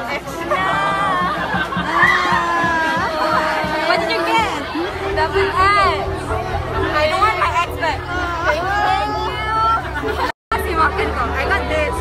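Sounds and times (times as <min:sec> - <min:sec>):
crowd babble: 0:00.0 - 0:12.0
people talking: 0:00.0 - 0:12.0.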